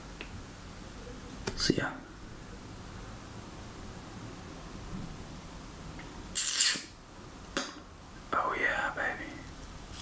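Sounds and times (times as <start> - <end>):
man whispering: 1.6 - 2.1, 8.3 - 9.6.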